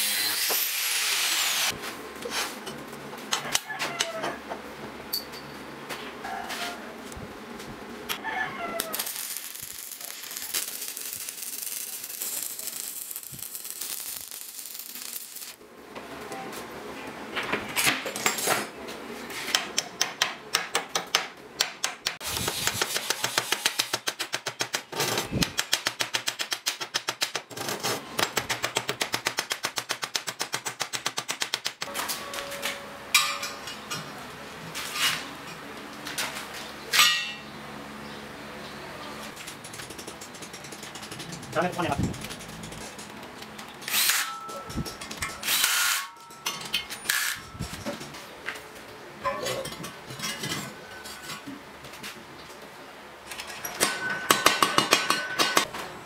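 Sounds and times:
welding arc crackling: 0.0s - 1.8s, 8.8s - 15.6s.

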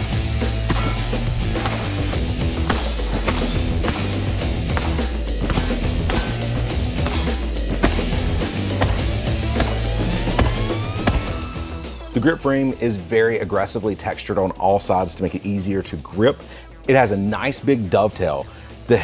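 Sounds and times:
music with heavy bass: 0.0s - 13.0s.

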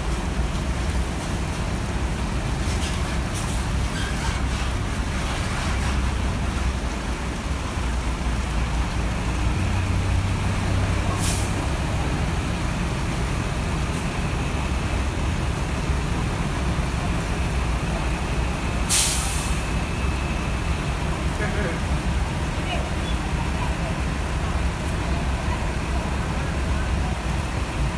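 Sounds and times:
bus diesel engine rumbling: 0.0s - 27.9s
air brake hisses: 18.9s - 19.6s.

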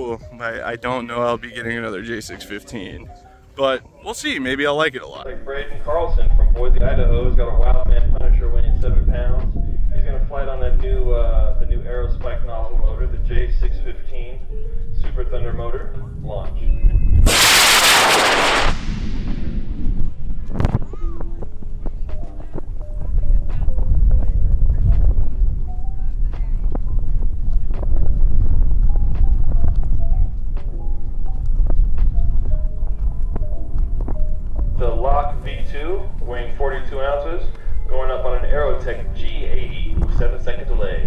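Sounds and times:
wind rumble on microphone: 5.2s - 41.0s
sharp crack: 17.2s - 19.8s
rocket motor roaring: 17.2s - 20.8s.

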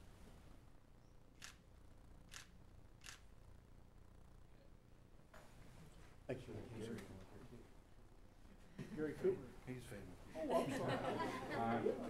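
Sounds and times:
room hum: 0.0s - 12.0s
camera shutter clicks: 2.3s - 3.3s.

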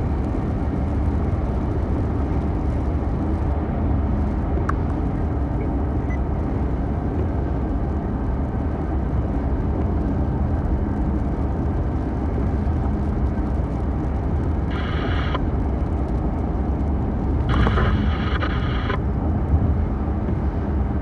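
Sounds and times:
road and tyre noise: 0.0s - 21.0s.

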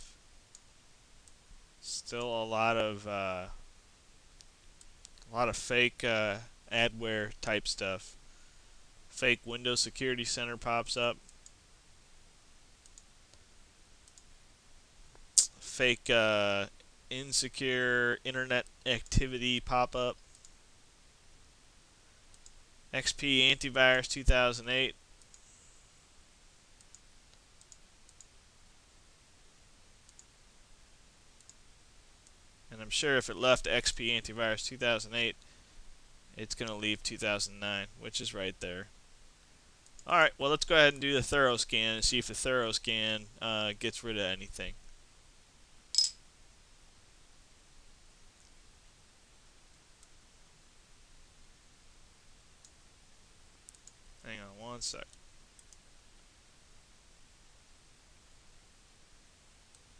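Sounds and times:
computer mouse clicks: 12.8s - 13.4s, 14.0s - 14.3s, 20.3s - 20.6s, 22.3s - 22.6s, 30.1s - 30.3s, 53.7s - 54.0s, 55.1s - 55.8s.

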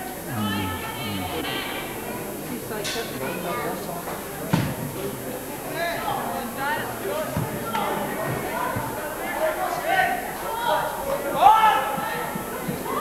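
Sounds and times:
chatter of spectators: 0.0s - 13.0s.

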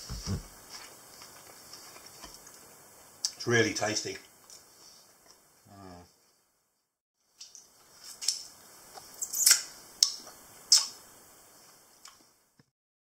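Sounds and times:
man lip-smacking and tongue clicks: 9.0s - 11.0s.

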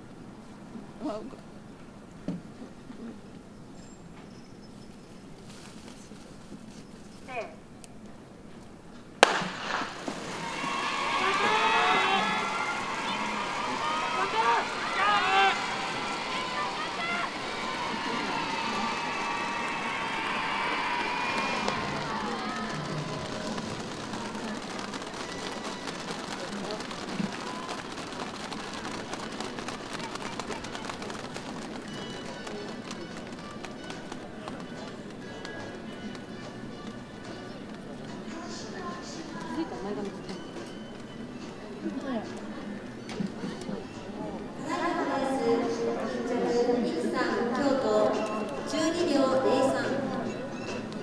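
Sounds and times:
crowd voices: 9.0s - 51.0s
starting gun crack: 9.2s - 12.0s, 21.2s - 34.6s
spectators shouting and cheering: 9.2s - 35.9s
crowd clapping: 9.2s - 40.1s
background music: 9.2s - 51.0s.

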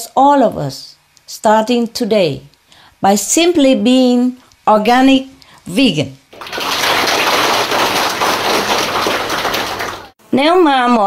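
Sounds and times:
large audience applauding: 6.3s - 10.2s.

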